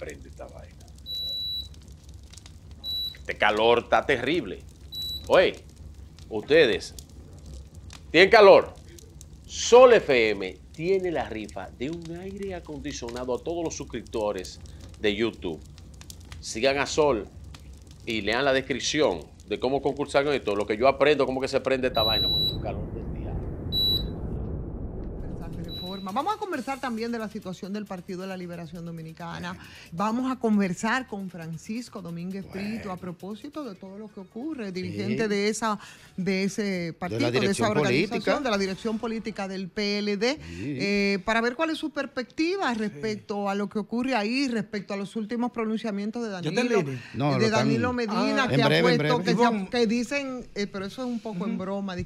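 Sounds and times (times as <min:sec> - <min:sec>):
low steady background rumble: 0:00.0 - 0:52.0
high electronic beeps: 0:01.1 - 0:01.7, 0:04.9 - 0:05.4, 0:22.0 - 0:22.7, 0:23.7 - 0:24.2, 0:25.6 - 0:26.2.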